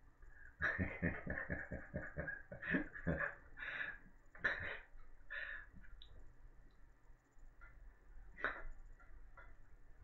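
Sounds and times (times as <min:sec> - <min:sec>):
man chuckling quietly: 0:00.6 - 0:05.2.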